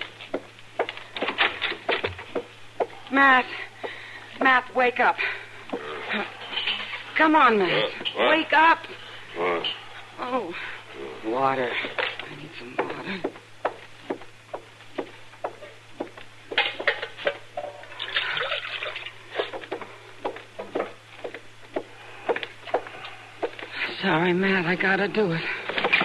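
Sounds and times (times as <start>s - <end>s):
water pouring and sloshing: 17.9s - 19.2s.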